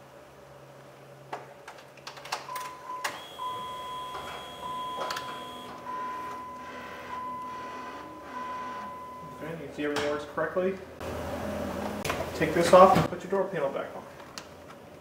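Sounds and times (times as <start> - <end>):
mirror motor whine: 3.0 - 9.6.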